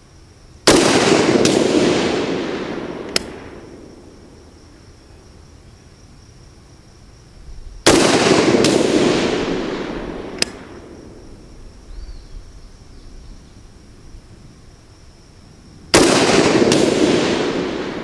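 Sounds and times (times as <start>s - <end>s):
rifle shots with echo: 0.6s - 4.4s, 7.8s - 11.2s, 15.9s - 18.0s.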